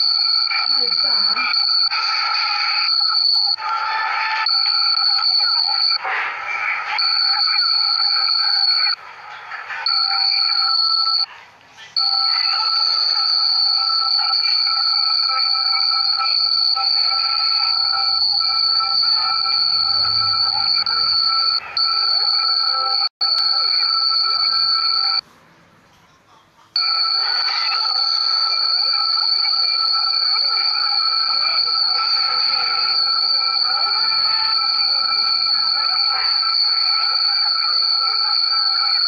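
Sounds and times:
high-pitched electronic ringing: 0.0s - 6.0s, 6.8s - 11.3s, 12.0s - 25.2s, 26.8s - 39.0s.

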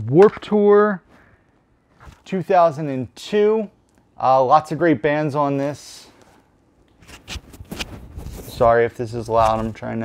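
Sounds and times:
rubbing and scraping on microphone: 7.0s - 10.0s.

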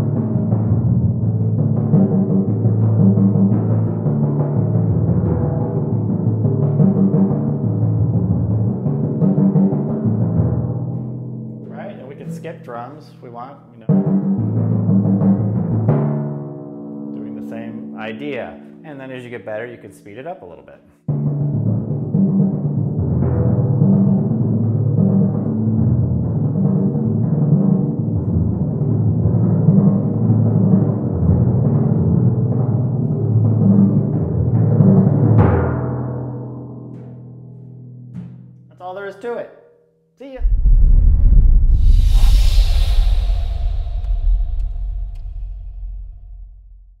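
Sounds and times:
loud low rumble with hiss: 40.4s - 47.0s
timpani strokes with felt mallets: 40.4s - 47.0s.

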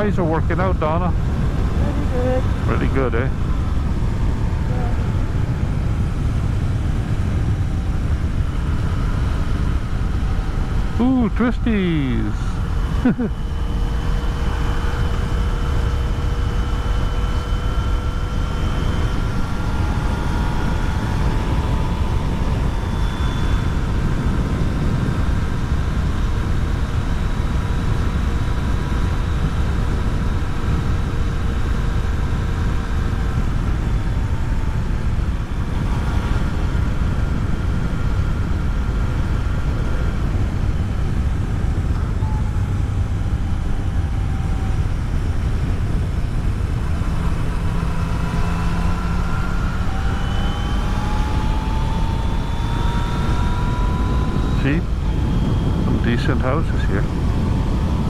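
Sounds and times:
motorcycle engine running: 0.0s - 56.1s
wind rush on microphone: 0.0s - 58.0s.

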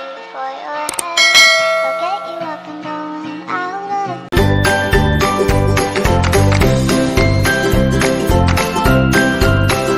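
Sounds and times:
background music: 0.0s - 9.9s
click: 0.9s - 1.2s
bright bell ring: 1.1s - 2.7s.

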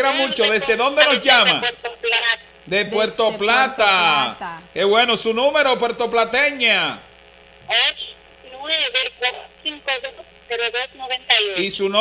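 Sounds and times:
woman speaking over telephone: 0.0s - 4.7s, 7.7s - 11.6s.

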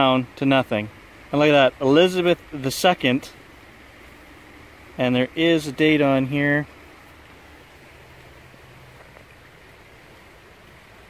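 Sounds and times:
faint outdoor background hiss: 0.0s - 11.0s.

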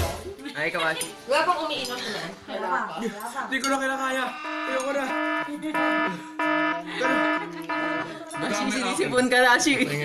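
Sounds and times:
electronic melody of held notes: 4.2s - 9.2s.

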